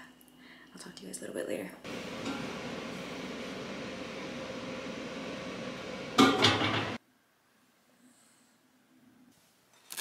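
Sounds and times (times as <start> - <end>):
steady low room noise: 0.0 - 9.9
dishes clattering: 6.2 - 7.0.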